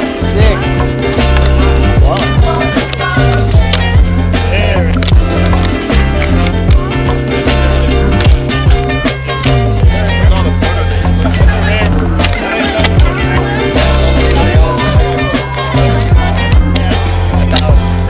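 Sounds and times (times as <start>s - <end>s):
music with deep sliding bass: 0.0s - 18.0s.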